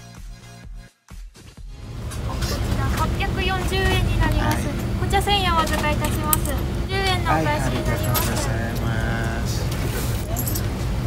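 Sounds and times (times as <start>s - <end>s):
low steady rumble: 1.7s - 11.0s
woman talking: 2.1s - 8.6s.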